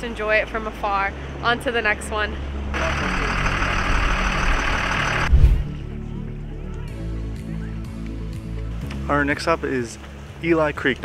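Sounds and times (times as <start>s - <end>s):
bus engine rumble and hiss: 0.0s - 5.3s
background music with low chords: 1.6s - 11.0s
heavy thump: 5.3s - 5.7s.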